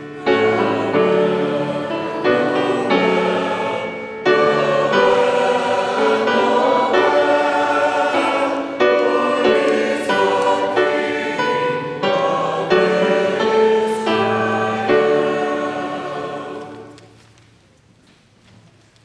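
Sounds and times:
church choir singing: 0:00.0 - 0:17.3.

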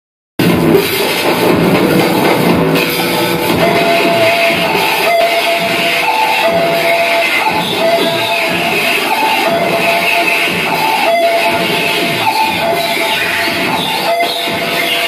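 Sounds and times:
loud noise music: 0:00.4 - 0:15.0.

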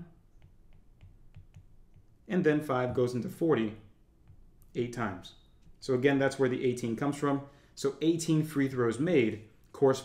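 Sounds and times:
stylus tapping on tablet: 0:00.3 - 0:02.2, 0:04.2 - 0:04.7.

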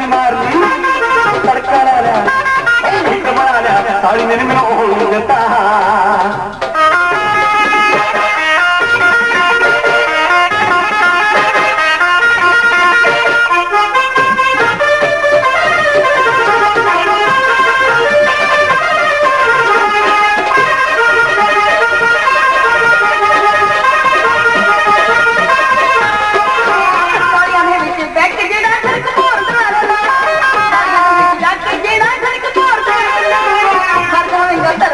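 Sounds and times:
plucked string instrument melody: 0:00.0 - 0:34.9.

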